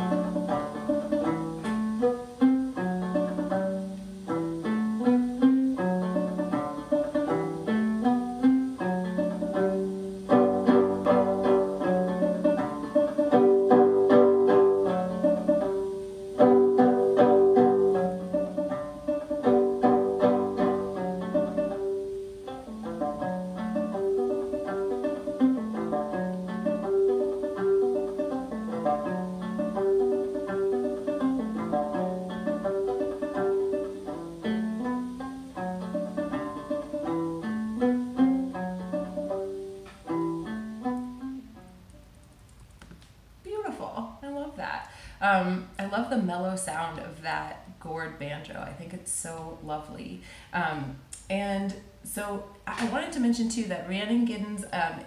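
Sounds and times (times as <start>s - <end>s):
banjo playing a jig: 0.0s - 42.2s.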